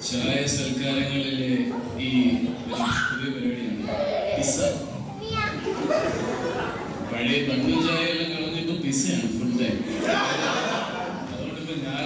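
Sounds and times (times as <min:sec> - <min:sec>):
voices talking in a large hall: 0:00.0 - 0:12.0
children's voices: 0:01.7 - 0:08.1.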